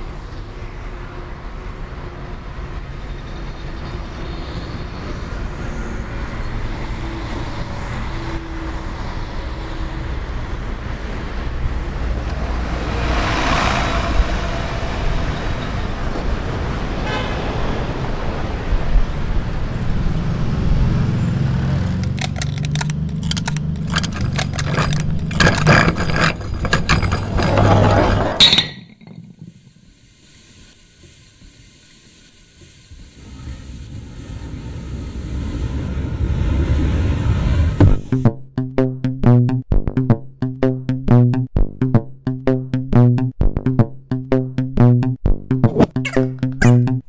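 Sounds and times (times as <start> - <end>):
passing vehicles: 0.0 - 28.6, 33.0 - 38.2
sharp clicks and clatter: 22.0 - 29.7.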